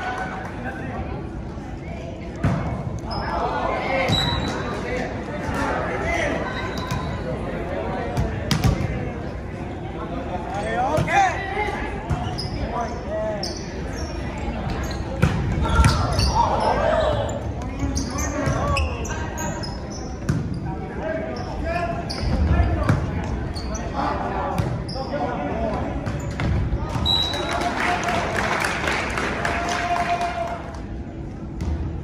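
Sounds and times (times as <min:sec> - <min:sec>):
players and spectators shouting: 0:15.6 - 0:19.2.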